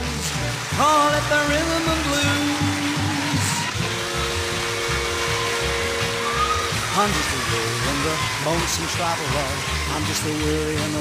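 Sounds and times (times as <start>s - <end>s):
rock and roll band music: 0.0s - 11.0s.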